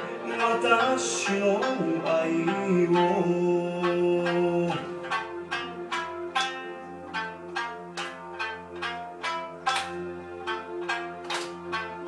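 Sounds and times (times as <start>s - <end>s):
plucked string melody: 0.0s - 12.0s.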